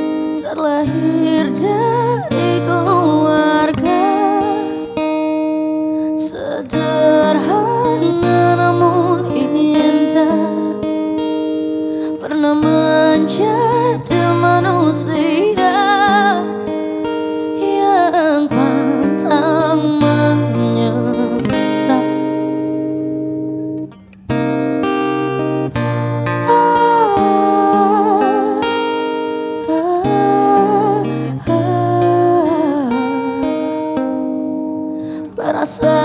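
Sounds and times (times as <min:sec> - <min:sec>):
woman singing a slow ballad: 0:00.0 - 0:23.0, 0:26.3 - 0:36.0
acoustic guitar chord ringing: 0:00.0 - 0:36.0.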